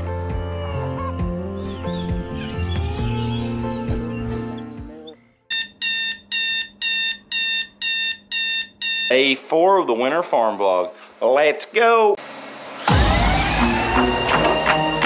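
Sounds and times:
background music: 0:00.0 - 0:05.4, 0:12.6 - 0:15.0
alarm clock beeping: 0:05.5 - 0:09.1.

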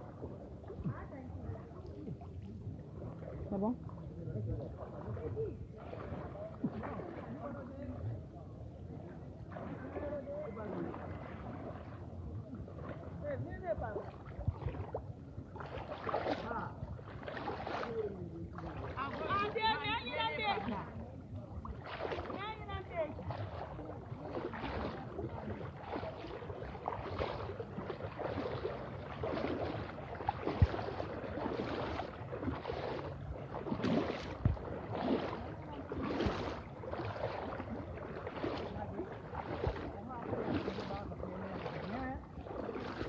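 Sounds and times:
legs wading through water: 0:00.0 - 0:43.0
faint voices: 0:00.1 - 0:43.0.

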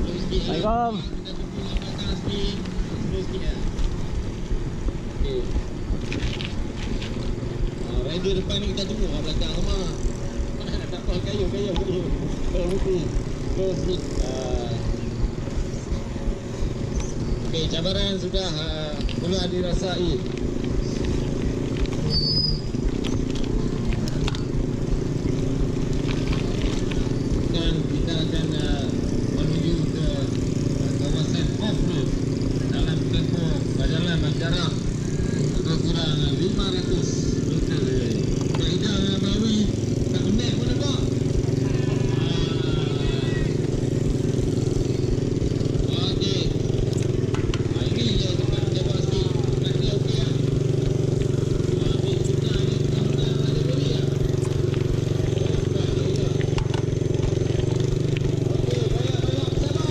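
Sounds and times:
vehicle engine running at low revs: 0:00.0 - 0:59.9
voices talking: 0:00.0 - 0:59.9.

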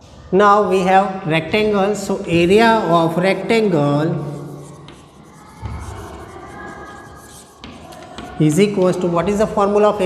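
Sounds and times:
chalk scratching on blackboard: 0:04.2 - 0:08.9.

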